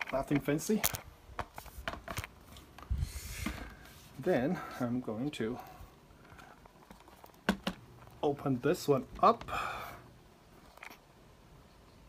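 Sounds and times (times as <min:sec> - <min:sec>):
laptop handling noise: 0:00.0 - 0:04.0, 0:06.2 - 0:08.2.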